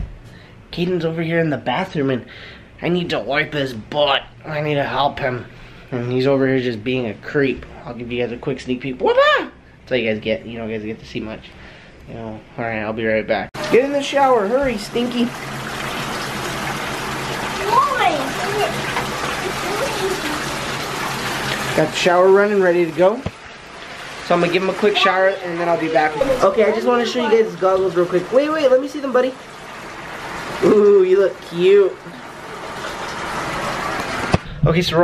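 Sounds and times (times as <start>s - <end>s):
faucet water pouring into tub: 13.6s - 34.4s.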